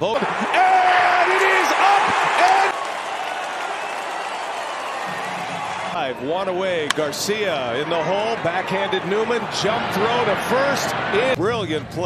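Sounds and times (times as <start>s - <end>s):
crowd cheering: 0.0s - 11.4s
shouts from crowd: 0.2s - 6.5s.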